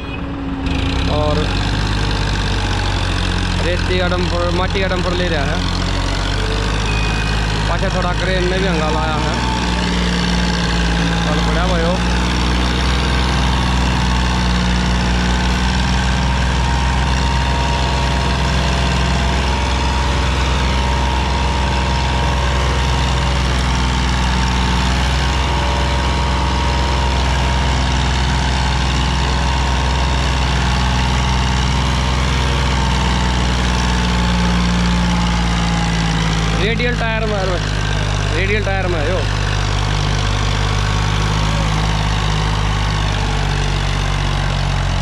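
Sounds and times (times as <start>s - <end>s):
tractor diesel engine under load: 0.0s - 45.0s.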